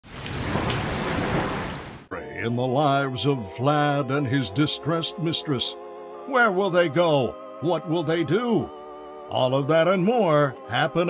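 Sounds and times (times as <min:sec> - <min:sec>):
heavy rain falling: 0:00.0 - 0:02.1.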